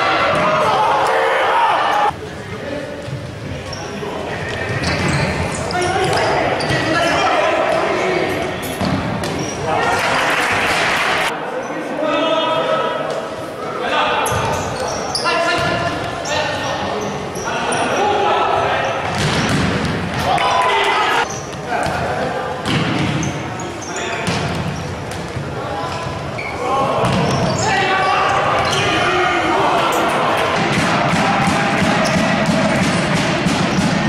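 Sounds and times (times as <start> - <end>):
players shouting: 0.0 - 2.2, 19.7 - 21.3, 26.5 - 34.0.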